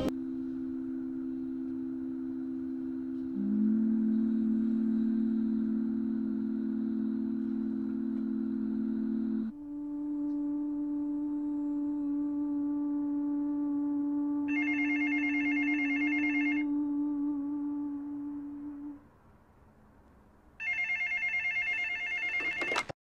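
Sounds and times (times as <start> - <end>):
steady low drone: 0.0 - 19.3
telephone ringing: 14.5 - 16.7, 20.6 - 23.0.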